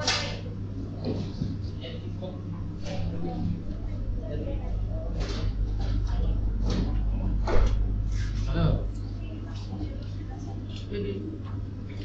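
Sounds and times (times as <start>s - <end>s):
indistinct customer chatter: 0.0s - 12.0s
steady low hum: 0.0s - 12.0s.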